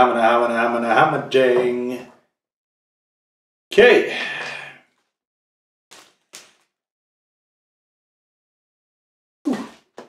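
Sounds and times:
bottle and plastic bag handling: 5.9s - 6.7s.

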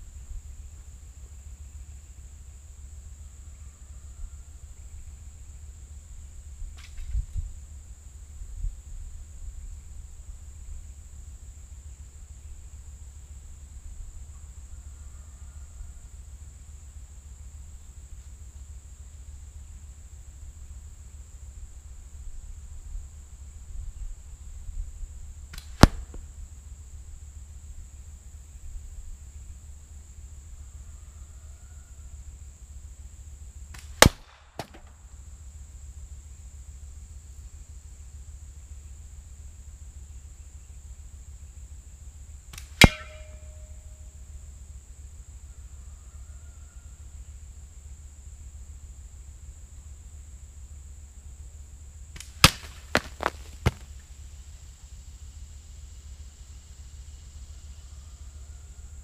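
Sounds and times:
high insect buzz: 0.0s - 59.0s
ball hitting drink can ringing: 42.8s - 43.6s, 52.4s - 53.8s
steel balls striking targets: 42.8s - 43.6s.

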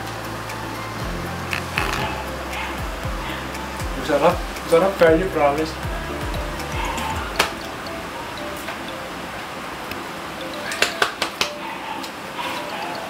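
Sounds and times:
faint background music: 0.0s - 13.0s.

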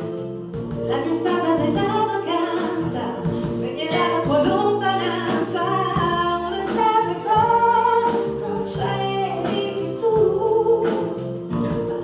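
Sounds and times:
small band playing: 0.0s - 12.0s
woman singing into a microphone: 0.0s - 12.0s.

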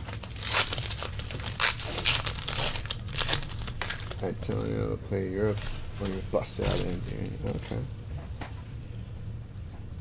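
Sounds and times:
foil wrapper crinkling and tearing: 0.0s - 4.8s, 5.5s - 7.9s.

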